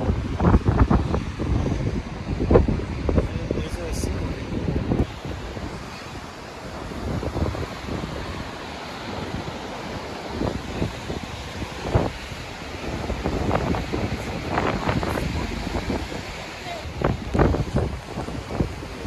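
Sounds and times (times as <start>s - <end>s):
surf breaking on rocks: 0.0s - 19.0s
wind buffeting microphone: 0.0s - 19.0s.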